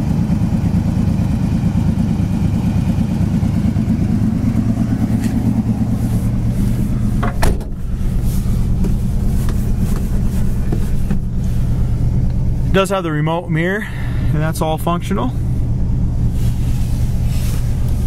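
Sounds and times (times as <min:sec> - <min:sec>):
car engine idling: 0:00.0 - 0:18.0
thump: 0:07.2 - 0:07.8.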